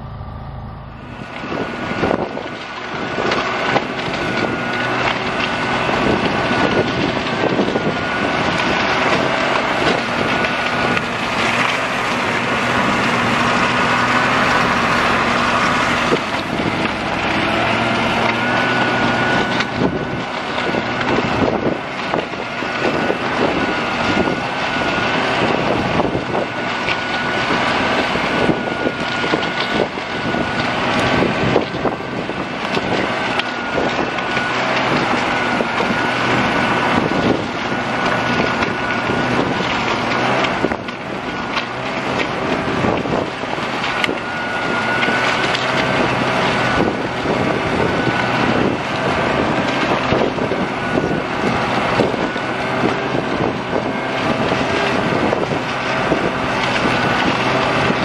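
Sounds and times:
snowmobile engine whine: 0:00.0 - 0:58.0.

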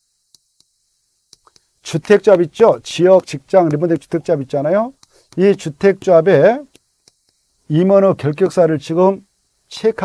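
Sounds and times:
chalk tapping on chalkboard: 0:01.4 - 0:07.4
man speaking: 0:01.8 - 0:06.7, 0:07.7 - 0:10.0.

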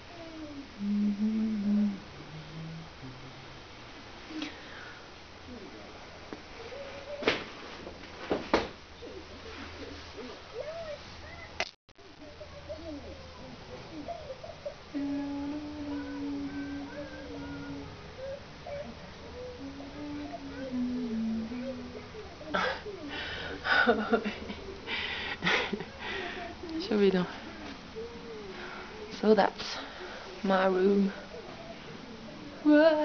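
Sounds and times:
person humming a tune: 0:00.0 - 0:03.6, 0:12.8 - 0:24.3, 0:32.6 - 0:33.0.

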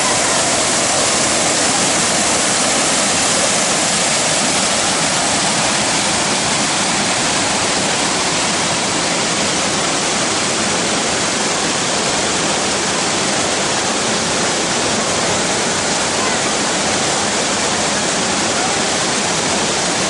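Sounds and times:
water rushing over rock: 0:00.0 - 0:20.0.

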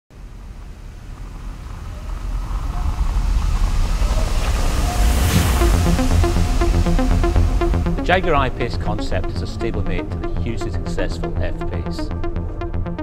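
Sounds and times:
deep bass rumble: 0:00.1 - 0:13.0
rising whoosh: 0:00.2 - 0:10.3
pulsing electronic beat: 0:04.3 - 0:13.0.

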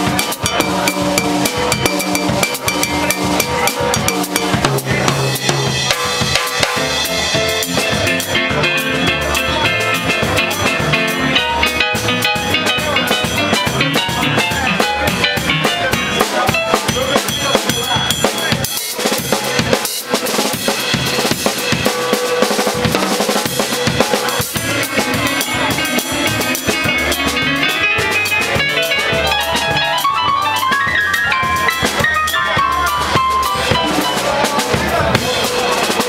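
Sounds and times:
electronic keyboard playing: 0:00.0 - 0:19.2, 0:20.6 - 0:36.0
drum kit with cymbals: 0:00.0 - 0:36.0.

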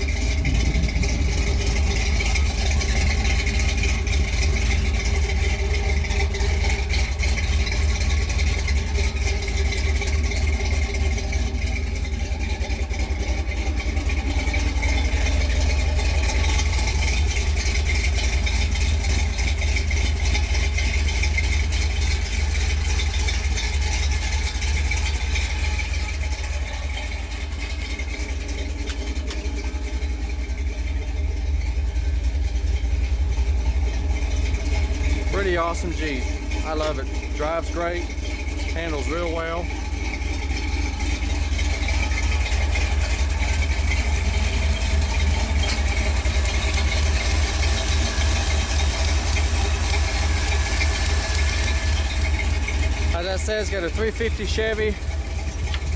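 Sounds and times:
engine idling: 0:00.0 - 0:55.9.

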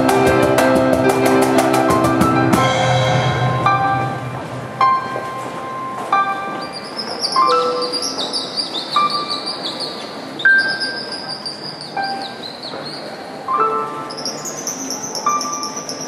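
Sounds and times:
sparse piano notes: 0:00.0 - 0:16.0.

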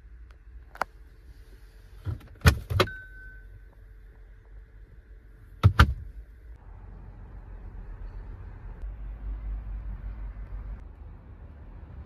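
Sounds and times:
faint high ring: 0:02.9 - 0:03.6.

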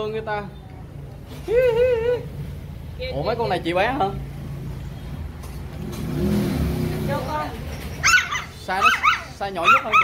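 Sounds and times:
vehicle engine passing by: 0:02.3 - 0:09.9.

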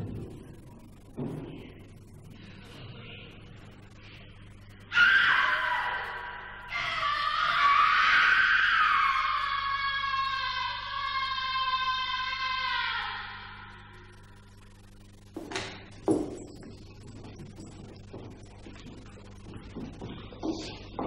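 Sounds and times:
girl screaming: 0:04.9 - 0:13.7.

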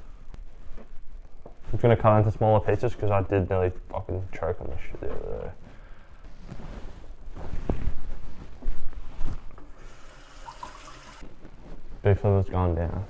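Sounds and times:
kitchen tap running: 0:09.7 - 0:11.2.

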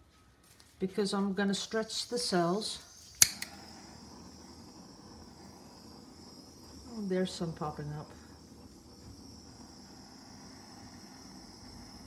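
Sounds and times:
flame hissing: 0:00.0 - 0:12.0
torch igniter click: 0:02.1 - 0:12.0.

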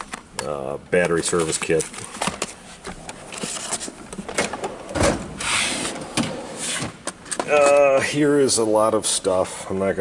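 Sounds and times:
steel drawers sliding: 0:03.4 - 0:07.4.

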